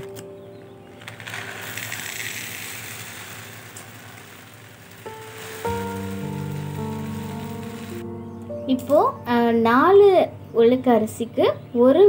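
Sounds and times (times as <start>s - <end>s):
lentils pouring into metal tin: 0.8s - 8.0s.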